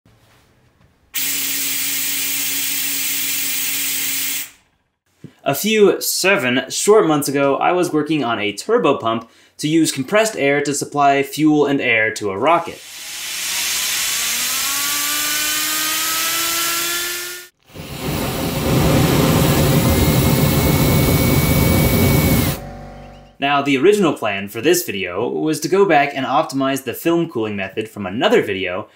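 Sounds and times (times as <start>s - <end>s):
compressed air hissing: 12.8s - 14.2s
turbine hum: 12.8s - 23.4s
rocket burner flame roaring: 17.6s - 22.6s
high steady whine: 17.7s - 23.4s.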